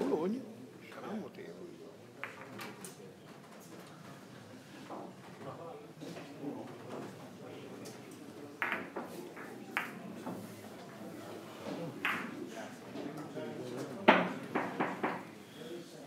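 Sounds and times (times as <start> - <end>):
billiard balls clicking: 8.6 - 10.0.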